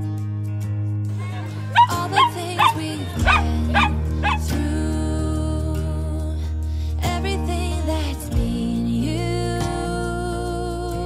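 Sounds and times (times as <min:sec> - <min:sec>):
background music: 0:00.0 - 0:11.0
dog barking: 0:01.6 - 0:04.5.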